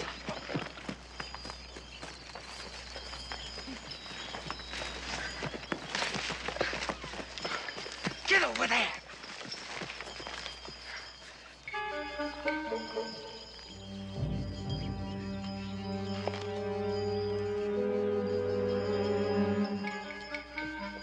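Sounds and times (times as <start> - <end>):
footsteps in undergrowth: 0.0 - 12.4, 13.5 - 17.4
horse hooves clopping: 0.0 - 17.8, 18.7 - 21.0.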